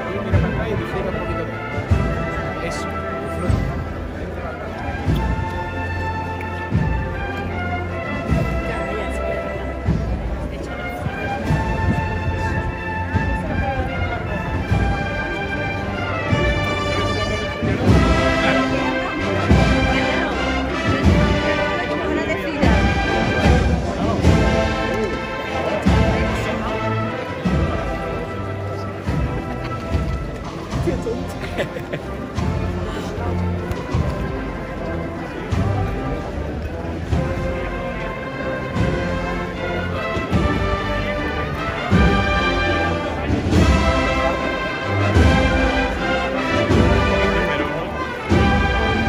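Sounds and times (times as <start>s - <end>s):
drum beats: 0.0s - 49.0s
street band playing march: 0.0s - 49.0s.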